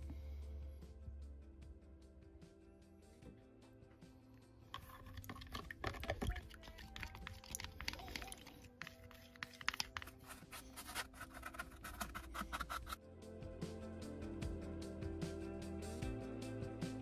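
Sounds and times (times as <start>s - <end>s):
background music: 0.0s - 17.0s
stick scraping plastic tub: 4.7s - 13.0s.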